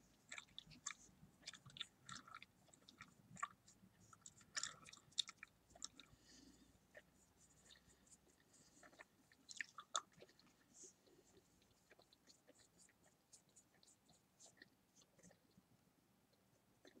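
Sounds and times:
bubble gum chewing smacks: 0.2 - 15.6.

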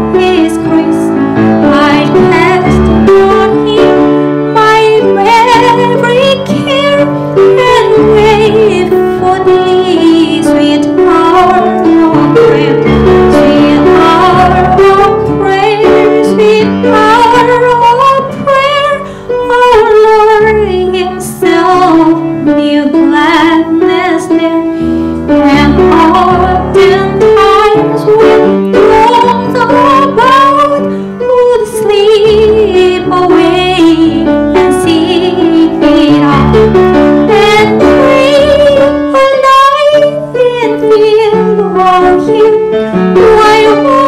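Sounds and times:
piano: 0.0 - 44.0
woman singing a hymn: 0.0 - 44.0.

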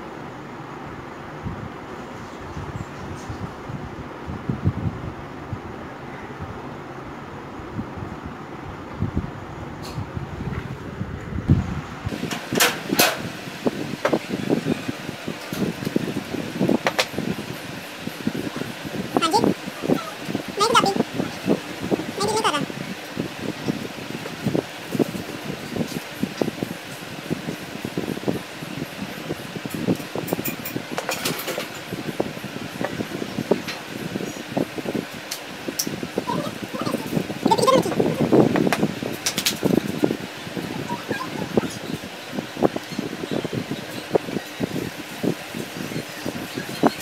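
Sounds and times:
steady background noise: 0.0 - 47.0.

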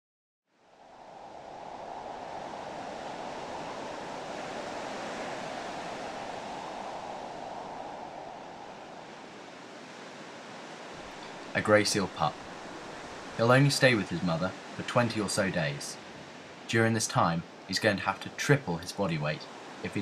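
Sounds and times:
wind: 0.5 - 20.0
distant surf: 0.6 - 20.0.

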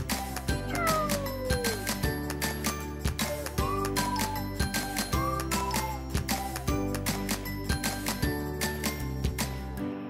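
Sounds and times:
cat meowing: 0.7 - 1.9.

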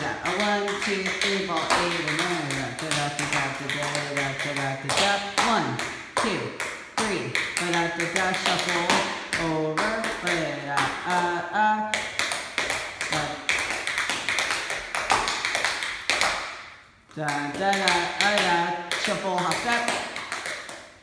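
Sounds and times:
person singing da da da: 0.0 - 12.1, 17.1 - 20.0
tap shoes on hard floor: 0.0 - 21.0.

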